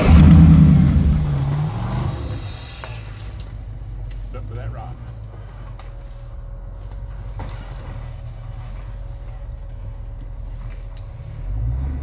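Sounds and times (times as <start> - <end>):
off-road engine low rumble: 0.0 - 12.0.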